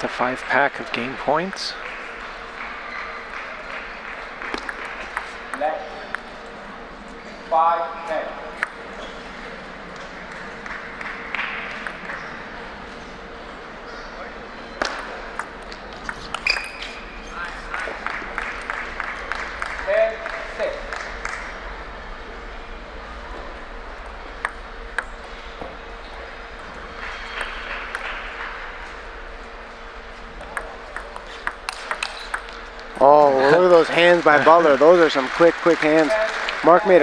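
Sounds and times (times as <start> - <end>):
table tennis ball clicking: 30.4 - 32.6.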